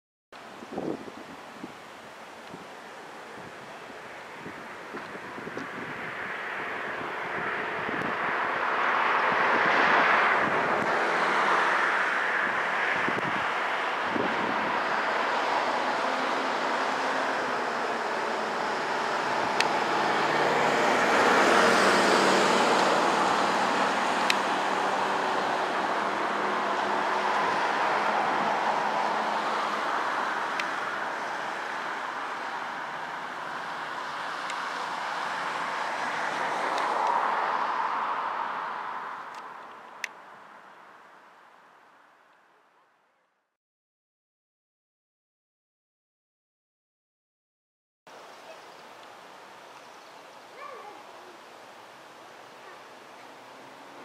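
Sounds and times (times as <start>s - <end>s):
passing cars: 0.4s - 43.1s, 48.1s - 54.0s.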